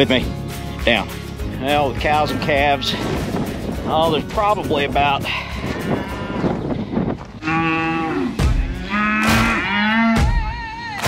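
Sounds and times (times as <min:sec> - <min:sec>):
cattle mooing: 0:05.6 - 0:06.6, 0:07.4 - 0:10.5.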